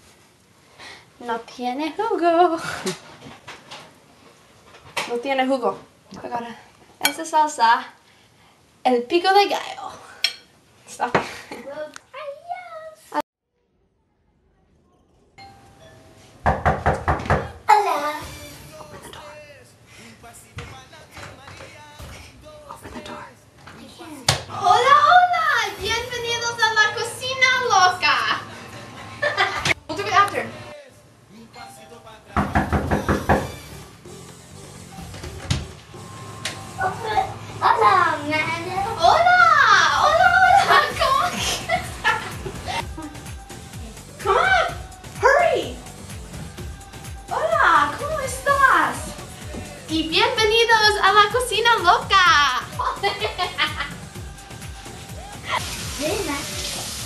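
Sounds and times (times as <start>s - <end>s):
knocking on wooden door: 16.4s - 17.6s, 32.4s - 33.6s
background music with a beat: 40.6s - 56.7s
faucet running into sink: 55.6s - 57.0s.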